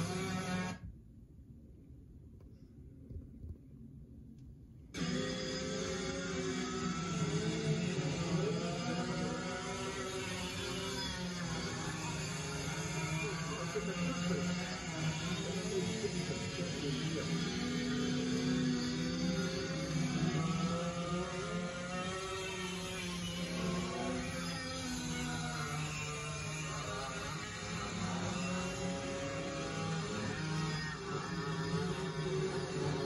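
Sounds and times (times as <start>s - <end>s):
go-kart engines racing: 0.0s - 0.8s, 5.0s - 33.0s.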